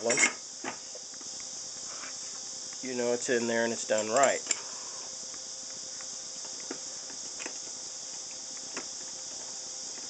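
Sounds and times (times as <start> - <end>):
steady high-pitched hiss: 0.0 - 10.0.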